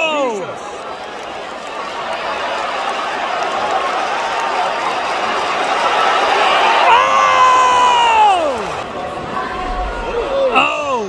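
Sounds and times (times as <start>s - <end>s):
arena crowd cheering: 0.0s - 11.0s
person screaming a yell: 10.2s - 11.0s.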